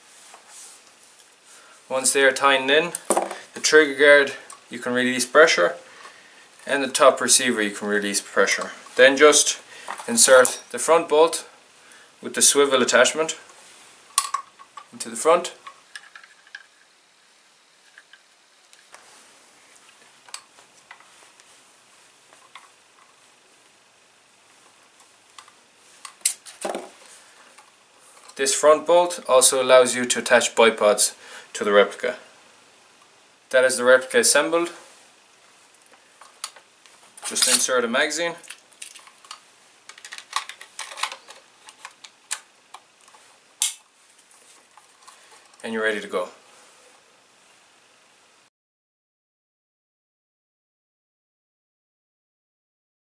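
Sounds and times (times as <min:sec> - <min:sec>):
faint clicks and handling noise: 0:04.4 - 0:04.7, 0:12.8 - 0:16.9, 0:17.8 - 0:21.6, 0:22.3 - 0:23.8, 0:24.5 - 0:28.5, 0:35.3 - 0:37.7, 0:38.4 - 0:45.7
rifle magazine clicking into place: 0:43.6 - 0:43.8.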